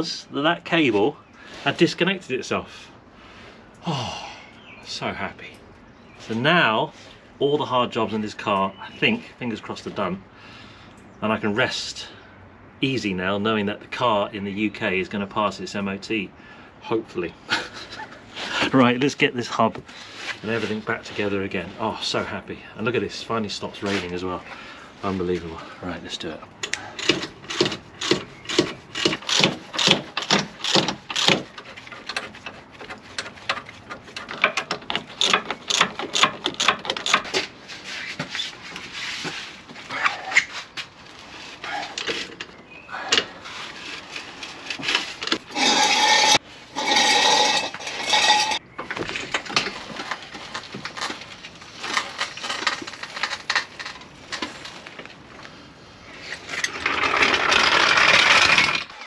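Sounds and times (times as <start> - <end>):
wheel brace turning wheel nuts: 26.6 - 39.4, 41.6 - 54.8, 56.2 - 59.0
hand tools clicking and scraping metal: 26.6 - 55.1, 56.2 - 59.0.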